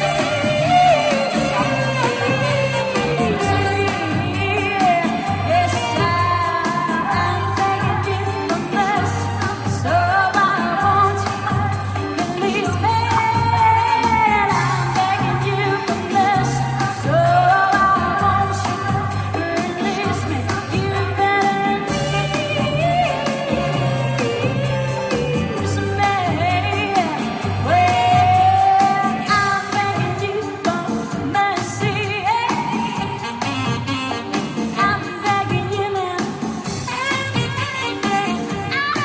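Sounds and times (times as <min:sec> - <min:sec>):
pop backing track with bass: 0:00.0 - 0:39.0
woman singing: 0:00.0 - 0:39.0.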